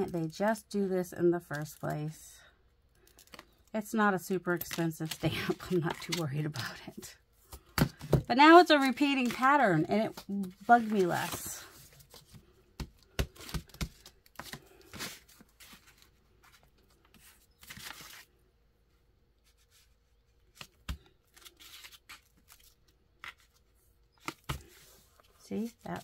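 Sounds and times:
paper rustling: 8.6 - 18.3.

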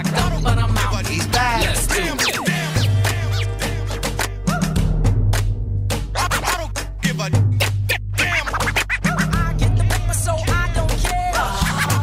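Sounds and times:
turntable scratching: 0.0 - 4.4, 7.6 - 10.2, 11.4 - 12.0
drum beat: 0.0 - 12.0
heavy bassline: 0.0 - 12.0.

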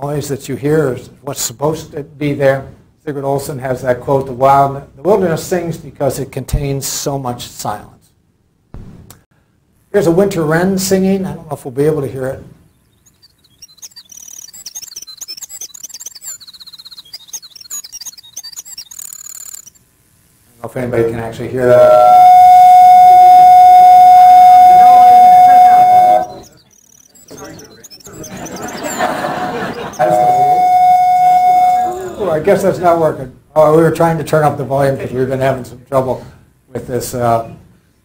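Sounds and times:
wren song trills: 12.7 - 19.8, 21.8 - 29.1, 29.7 - 32.2
feedback tone: 21.5 - 32.7.

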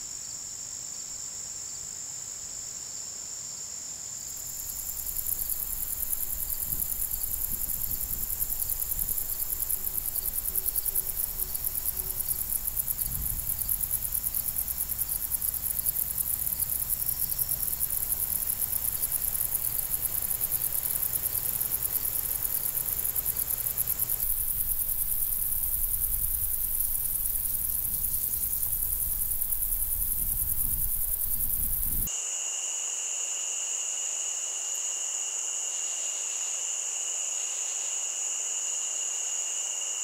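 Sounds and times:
insects trilling: 4.1 - 40.0.

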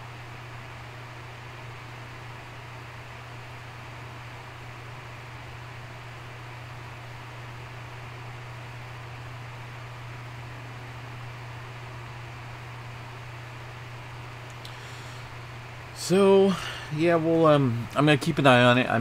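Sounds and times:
low even hum: 0.0 - 19.0
steady background hiss: 0.0 - 19.0.

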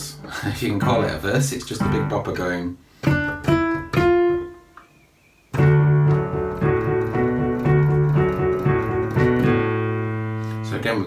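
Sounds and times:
rock and roll piano: 0.0 - 4.7, 5.5 - 11.0.

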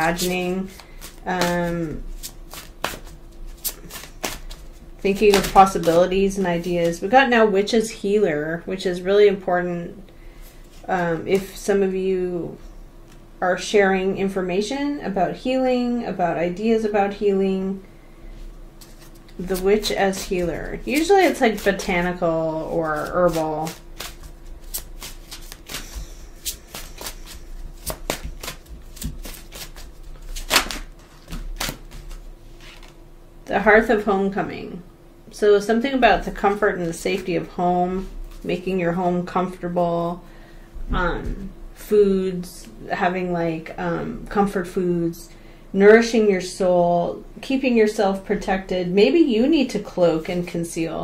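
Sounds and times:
cards snapping: 2.2 - 4.6, 5.2 - 6.0, 23.0 - 32.1.

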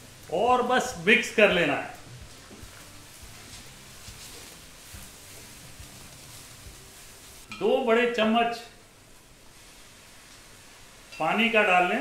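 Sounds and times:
wooden spatula scraping a pan: 2.3 - 6.6.

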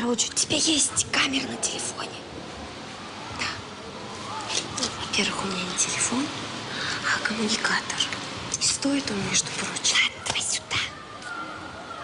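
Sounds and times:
girls whispering: 3.3 - 3.7, 9.5 - 11.8.

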